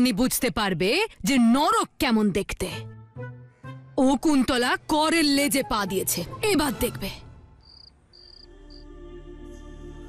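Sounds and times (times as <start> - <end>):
soft background music: 0.1 - 10.0
crickets chirping: 7.6 - 8.9.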